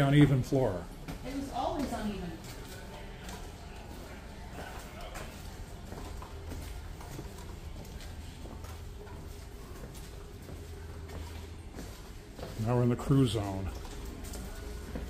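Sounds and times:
footsteps on a hard floor: 0.0 - 15.0
steady low hum: 0.0 - 15.0.

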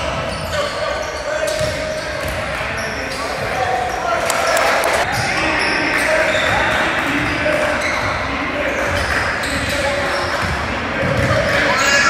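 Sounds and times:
sneaker squeaks: 0.0 - 12.0
spectators chattering: 2.8 - 8.8, 11.6 - 12.0.

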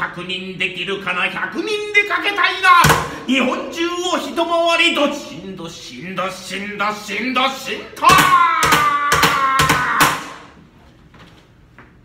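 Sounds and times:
person reciting rapidly: 0.0 - 10.3
fan smacking wooden lectern: 2.8 - 3.2, 8.0 - 10.6.

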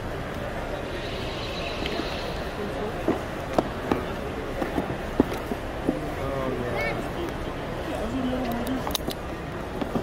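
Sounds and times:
murmur of voices in hall: 0.0 - 10.0.

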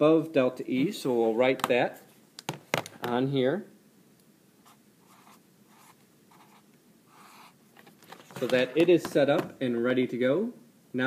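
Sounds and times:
marker writing on whiteboard: 4.7 - 7.6.

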